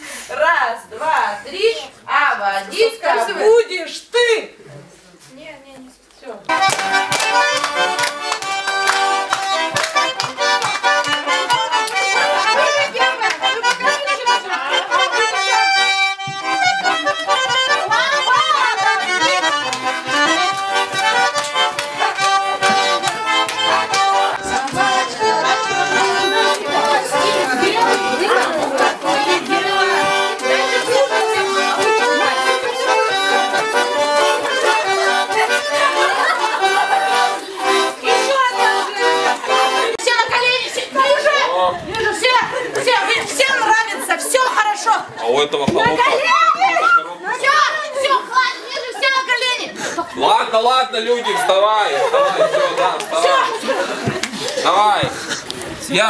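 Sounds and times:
accordion playing folk dance tune: 0.0s - 3.8s, 6.4s - 45.2s, 46.0s - 56.0s
hand clapping in time: 6.5s - 14.0s, 15.0s - 37.8s.

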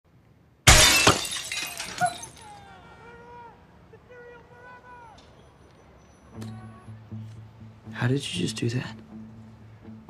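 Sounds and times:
broken glass tinkling: 0.7s - 2.5s
window glass shattering: 0.7s - 2.5s.

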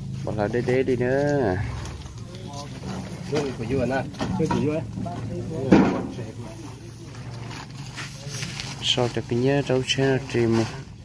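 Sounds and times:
faint voices talking: 0.3s - 11.0s.

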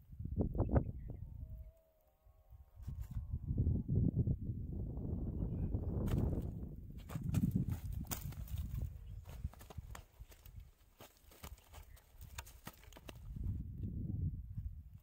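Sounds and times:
fish flapping on hard ground: 7.2s - 13.3s.

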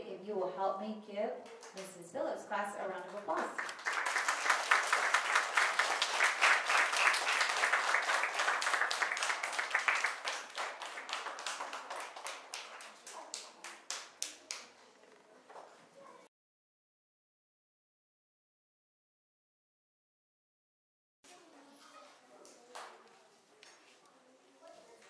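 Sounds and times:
children clapping: 3.3s - 14.8s, 22.4s - 23.1s.

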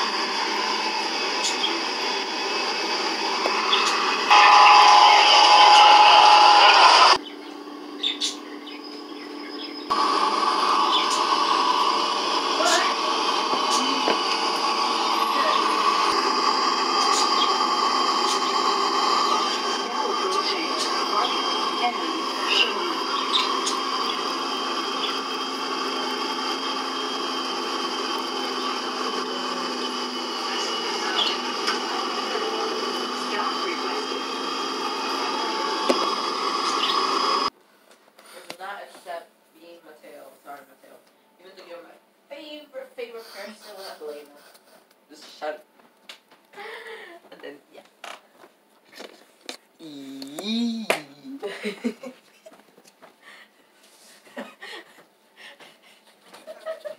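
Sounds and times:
steady high tone: 0.0s - 7.2s, 9.4s - 37.5s.

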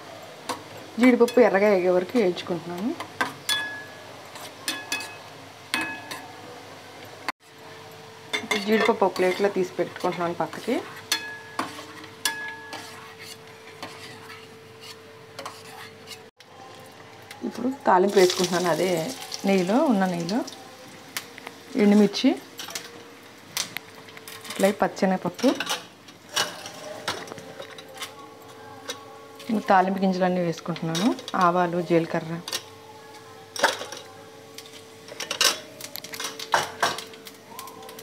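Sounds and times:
food sizzling in hot oil: 7.4s - 27.3s
spoon scraping metal pan: 10.0s - 16.3s.

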